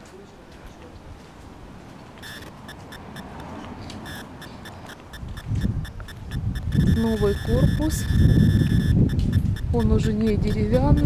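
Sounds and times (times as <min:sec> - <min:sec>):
low handling or wind rumble: 0:01.0 - 0:11.0
rapid high-pitched ticking: 0:02.2 - 0:11.0.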